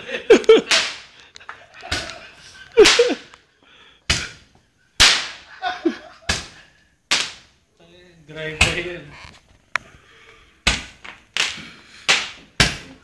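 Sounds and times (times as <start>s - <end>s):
firecrackers banging: 0.3s - 3.4s, 5.0s - 7.6s, 10.7s - 13.0s.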